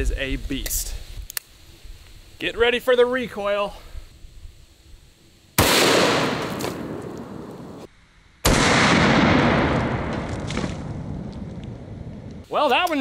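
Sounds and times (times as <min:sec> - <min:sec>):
revolver gunshots with echo: 0:05.6 - 0:07.8, 0:08.4 - 0:10.2.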